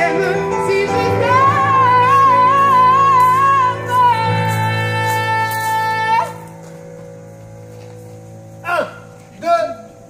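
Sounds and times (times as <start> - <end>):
keyboard chord: 0.0 - 10.0.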